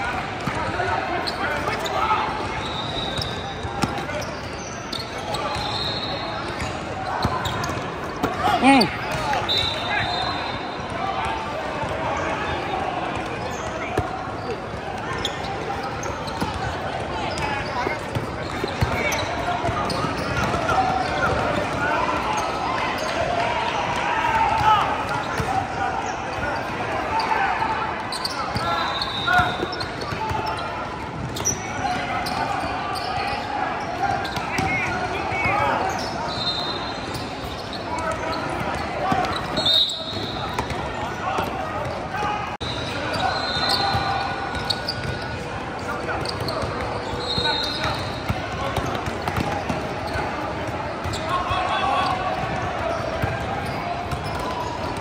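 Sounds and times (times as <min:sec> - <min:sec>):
shoes squeaking: 0:01.2 - 0:10.5, 0:35.4 - 0:50.4
people calling out: 0:08.4 - 0:10.6.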